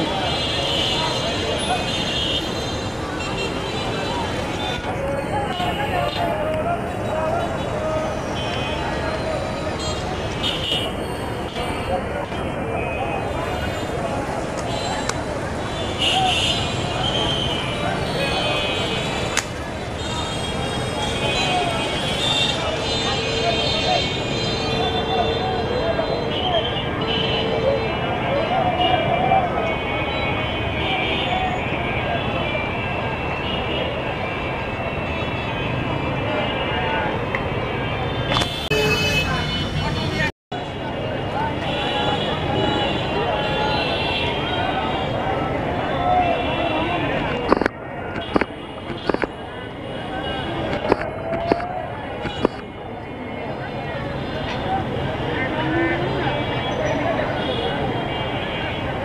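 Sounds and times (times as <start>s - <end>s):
many people's voices: 0.0s - 59.0s.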